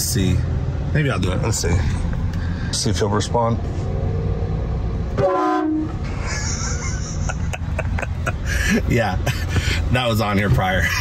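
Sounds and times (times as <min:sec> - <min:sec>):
truck air horns sounding: 0:05.2 - 0:06.1
person laughing: 0:06.0 - 0:09.7.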